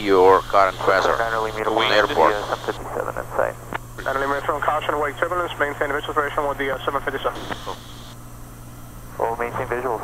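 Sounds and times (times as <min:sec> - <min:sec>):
tinny voice over aircraft radio: 0:00.0 - 0:07.8
low cabin hum: 0:00.0 - 0:10.0.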